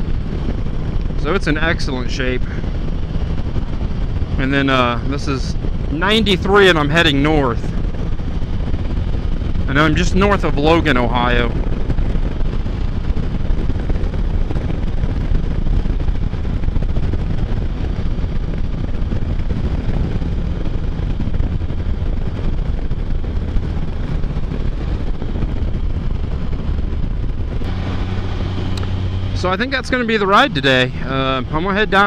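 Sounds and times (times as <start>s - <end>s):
motorcycle engine running: 0.0s - 32.0s
wind rush on microphone: 0.0s - 32.0s.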